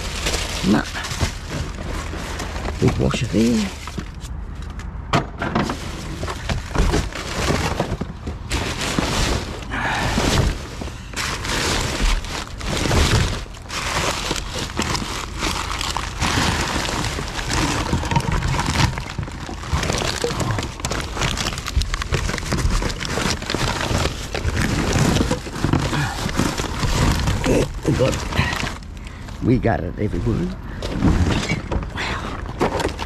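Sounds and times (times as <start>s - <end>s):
plastic bags crinkling: 0.0s - 4.7s, 5.6s - 33.0s
bottles and boxes clattering: 5.1s - 28.8s.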